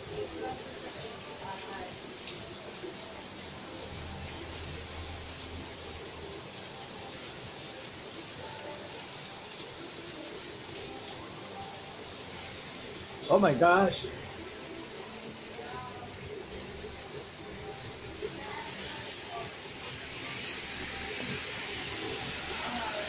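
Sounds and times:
steady rain falling: 0.0s - 23.0s.

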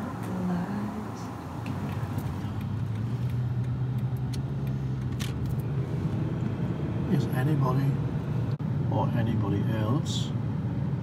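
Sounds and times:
car engine and road hum: 0.0s - 11.0s.

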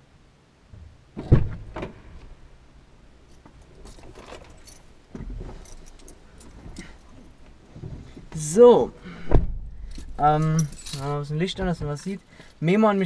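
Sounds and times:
thump of body into seat: 1.2s - 2.0s, 9.3s - 9.6s
car door opening: 1.2s - 2.3s, 9.2s - 9.7s
keys jangling: 3.3s - 4.9s, 5.5s - 7.3s, 9.9s - 11.4s
clothing rustling: 3.3s - 8.5s.

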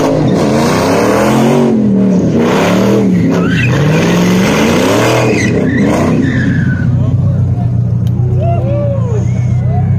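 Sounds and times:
car engine rumbling: 0.0s - 9.9s.

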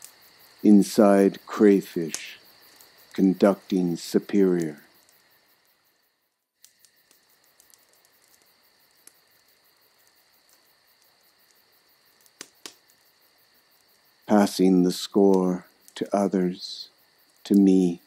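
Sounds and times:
soft ticks: 6.6s - 9.2s
sharp clicks: 12.2s - 13.0s.

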